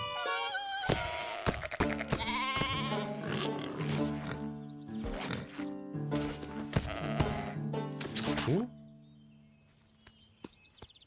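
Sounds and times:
cartoon sheep bleating: 0:00.0 - 0:04.3, 0:06.7 - 0:07.6.

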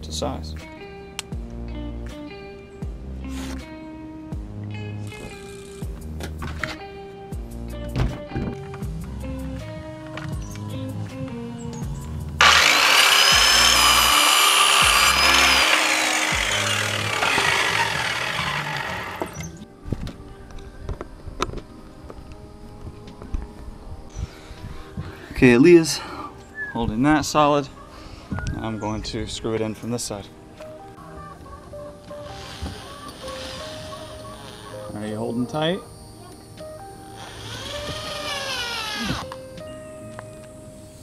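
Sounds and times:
background music with beat: 0:05.8 - 0:12.4
circular saw cutting wood: 0:12.4 - 0:19.6, 0:32.2 - 0:34.8, 0:37.2 - 0:39.3.

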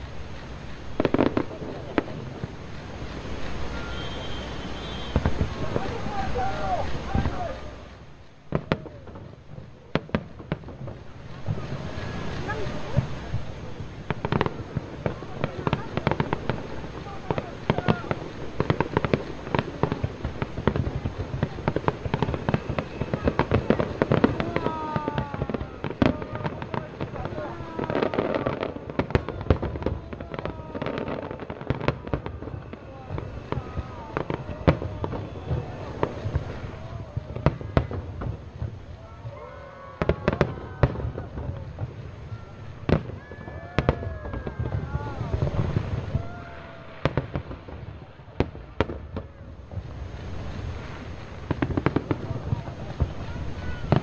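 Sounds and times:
fireworks bursting: 0:00.0 - 0:54.0
fireworks crackling: 0:00.0 - 0:54.0.

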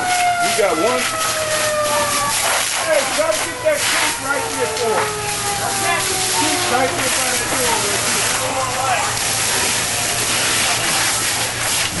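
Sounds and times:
water hose rushing hiss: 0:00.0 - 0:12.0
faint voices: 0:00.4 - 0:11.8.

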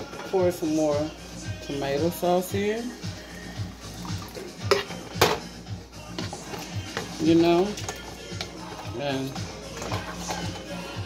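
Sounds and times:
background music with beat: 0:00.0 - 0:11.0
tin can clanking on metal pot: 0:04.6 - 0:05.5.

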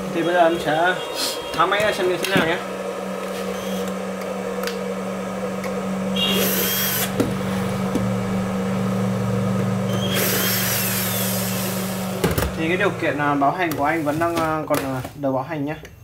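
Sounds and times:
cooling fan humming: 0:00.0 - 0:15.0.

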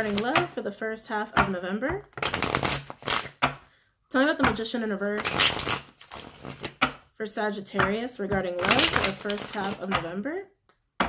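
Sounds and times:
playing cards being shuffled: 0:00.0 - 0:00.4, 0:02.0 - 0:03.6, 0:05.2 - 0:07.0, 0:08.4 - 0:10.1.

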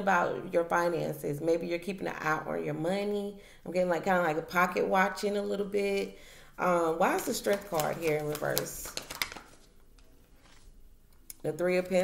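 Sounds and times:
cards clicking: 0:07.4 - 0:10.2.

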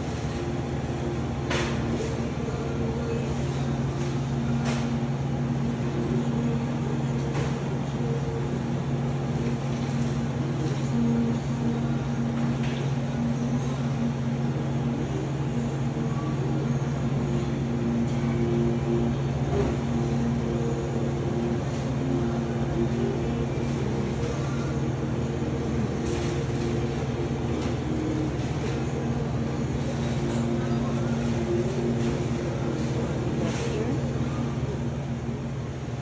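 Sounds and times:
refrigerator low hum: 0:00.0 - 0:36.0.

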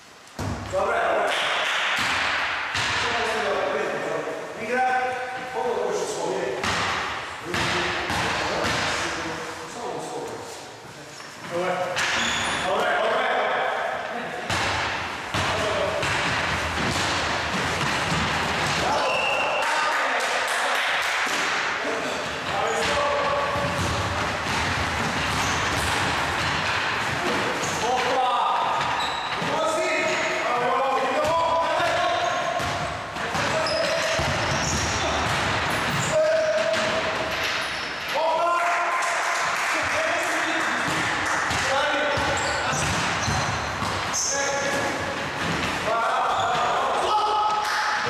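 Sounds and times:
basketball dribbling on wooden floor: 0:23.4 - 0:27.3.

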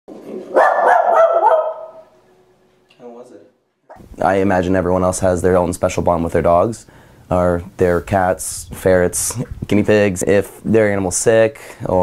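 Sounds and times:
dog barking: 0:00.5 - 0:02.2.

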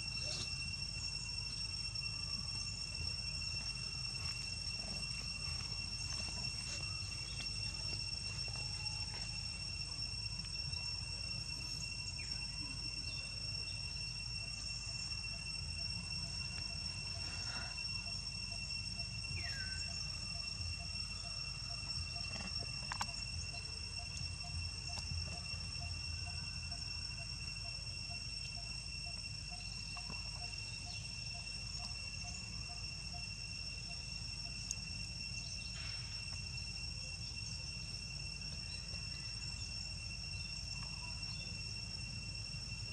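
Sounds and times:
faint pulsing call: 0:00.0 - 0:42.2
faint chirps: 0:00.0 - 0:42.9
high-pitched insect drone: 0:00.0 - 0:42.9.

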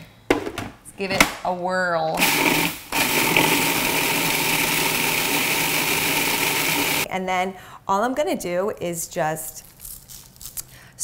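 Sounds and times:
food processor whirring: 0:02.2 - 0:07.1.

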